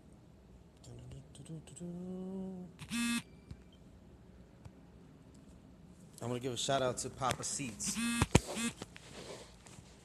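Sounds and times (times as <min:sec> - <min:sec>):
brief buzzing tone: 0:02.8 - 0:03.8, 0:07.9 - 0:08.8.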